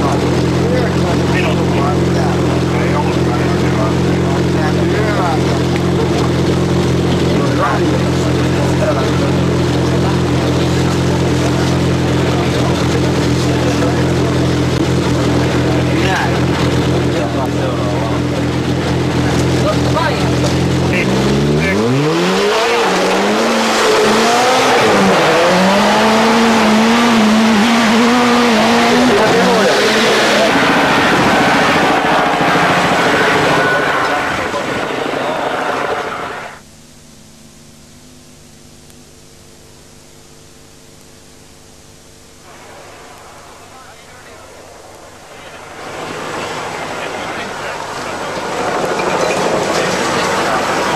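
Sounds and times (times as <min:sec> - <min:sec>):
rally car engine: 0:00.0 - 0:50.9
faint hum: 0:32.9 - 0:50.9.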